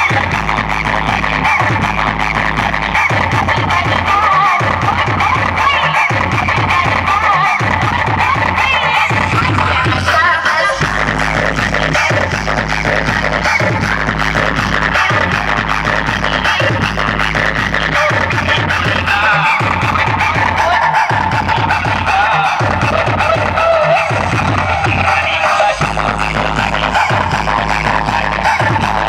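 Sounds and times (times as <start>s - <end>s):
loud dance music through speakers: 0.0s - 29.0s.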